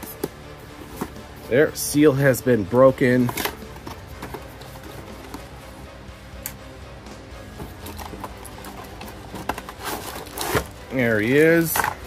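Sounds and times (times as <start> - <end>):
soft background music: 0.0 - 12.0
plastic scraping: 3.2 - 5.4, 7.6 - 12.0.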